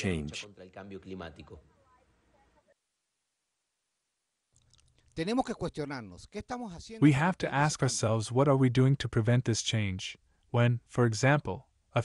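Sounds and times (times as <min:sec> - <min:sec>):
man speaking: 0:00.0 - 0:01.6, 0:05.2 - 0:12.0.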